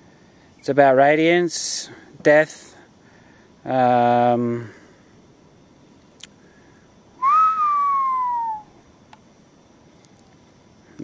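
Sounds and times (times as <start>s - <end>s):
whistled note gliding down: 7.2s - 8.7s.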